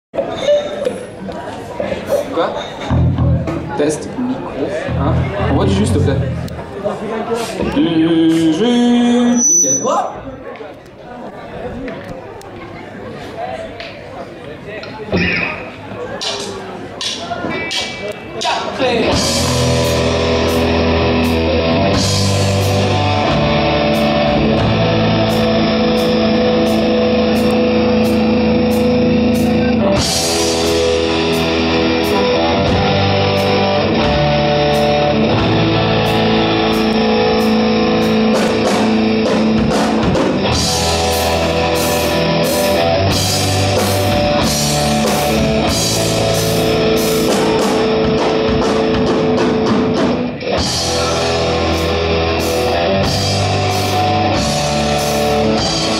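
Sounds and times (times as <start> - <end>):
bass guitar: 2.8 - 6.8, 15.1 - 15.6, 18.9 - 55.9
electric guitar chords: 2.9 - 6.8, 19.0 - 55.9
drum kit with cymbals: 16.2 - 55.9.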